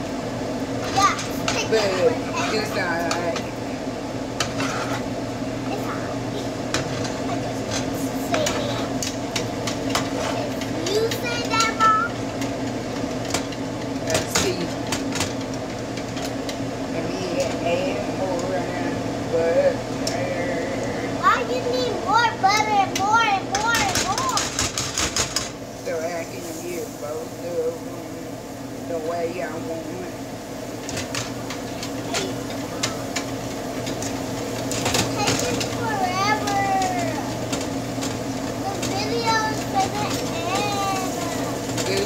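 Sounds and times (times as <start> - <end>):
steady mechanical hum: 0.0 - 42.0
child's high voice: 10.8 - 12.2, 21.2 - 24.4, 32.0 - 32.4, 35.2 - 37.4, 38.6 - 41.5.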